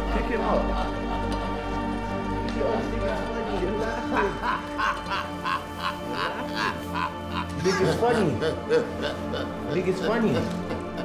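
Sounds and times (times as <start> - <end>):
droning music: 0.0 - 11.0
man laughing rhythmically: 0.3 - 2.0, 3.1 - 11.0.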